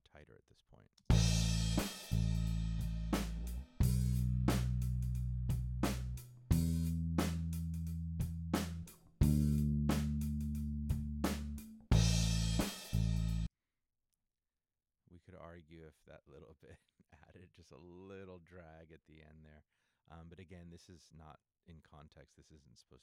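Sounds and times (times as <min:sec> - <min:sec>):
bass ringing notes: 0:01.1 - 0:13.5
drum kit: 0:01.1 - 0:13.5.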